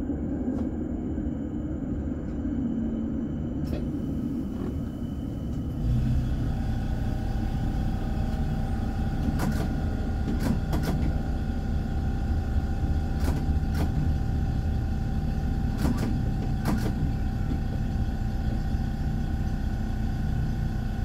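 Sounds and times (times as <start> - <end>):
tram rumble and whine: 0.0 - 21.0.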